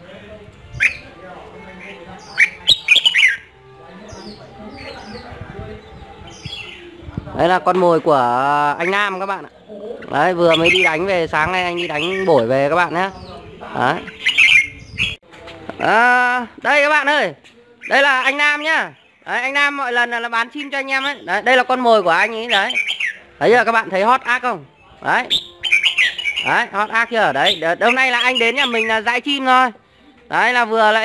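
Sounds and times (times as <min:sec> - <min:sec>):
bird chirping: 0:00.6 - 0:15.2, 0:17.6 - 0:31.0.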